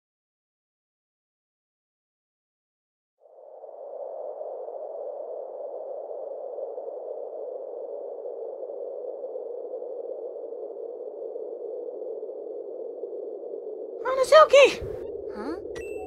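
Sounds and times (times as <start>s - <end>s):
faint high tones: 14.0s - 16.0s.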